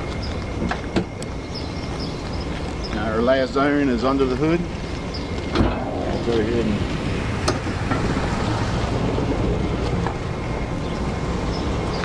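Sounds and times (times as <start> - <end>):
bus engine idling: 0.0 - 12.0
wind noise on microphone: 4.7 - 12.0.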